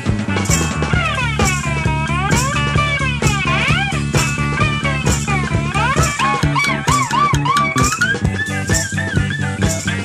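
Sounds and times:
bass: 0:00.0 - 0:10.0
drum beat: 0:00.0 - 0:10.0
electric slide guitar: 0:00.0 - 0:10.0.

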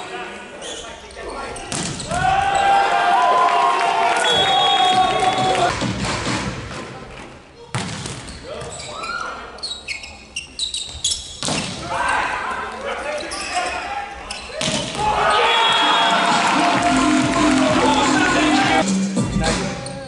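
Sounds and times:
crowd cheering: 0:02.2 - 0:05.8, 0:14.8 - 0:18.8
crowd voices: 0:11.7 - 0:20.0
volleyball hits: 0:14.6 - 0:18.1.

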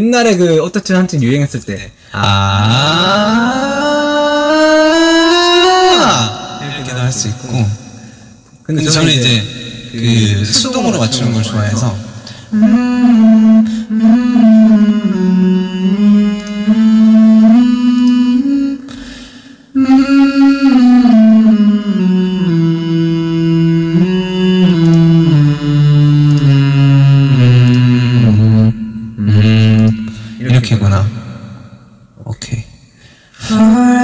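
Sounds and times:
pitch-corrected male vocal: 0:00.0 - 0:19.0, 0:19.7 - 0:32.7, 0:33.4 - 0:34.0.

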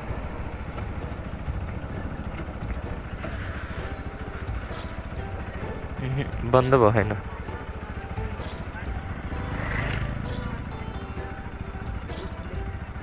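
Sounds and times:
motorcycle engine rumbling: 0:00.0 - 0:13.0.

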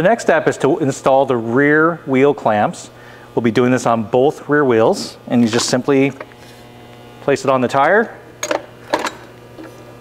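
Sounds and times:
steady mains hum: 0:00.0 - 0:10.0.

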